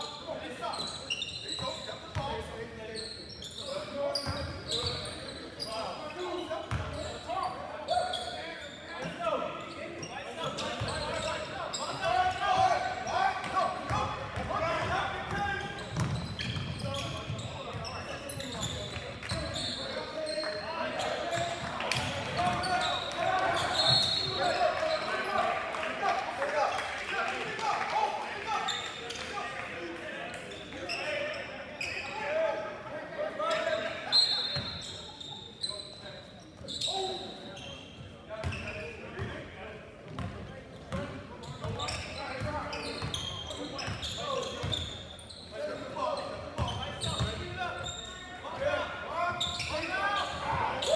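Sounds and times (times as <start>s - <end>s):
sneaker squeaks: 0.1s - 25.3s, 30.5s - 32.4s, 33.5s - 39.4s, 40.1s - 50.9s
basketball bouncing on court: 13.4s - 17.9s, 40.1s - 43.2s.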